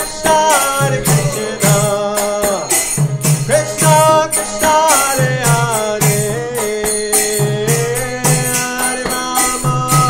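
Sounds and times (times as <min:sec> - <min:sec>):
drum beat: 0:00.0 - 0:10.0
jingling hand cymbals: 0:00.0 - 0:10.0.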